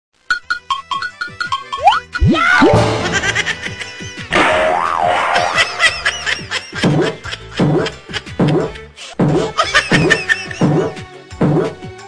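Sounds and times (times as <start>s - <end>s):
plinking music jingle: 1.0s - 4.6s.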